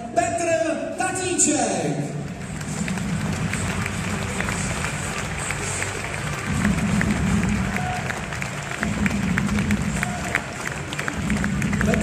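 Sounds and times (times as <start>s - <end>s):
music over sound system: 1.8s - 12.0s
crowd applauding: 2.2s - 12.0s.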